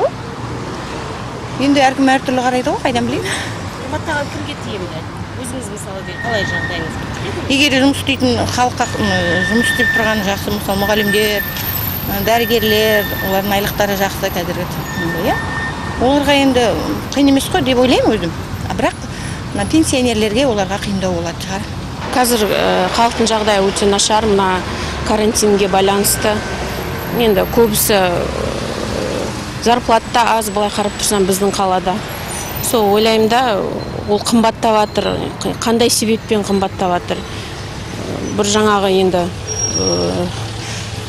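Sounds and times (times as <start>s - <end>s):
road traffic passing: 0.0s - 41.0s
woman talking: 1.6s - 15.4s, 16.0s - 26.4s, 27.1s - 32.0s, 32.6s - 40.4s.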